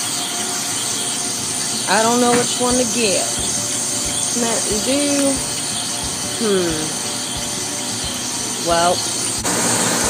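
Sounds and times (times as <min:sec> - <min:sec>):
frozen drink machines humming: 0:00.0 - 0:10.0.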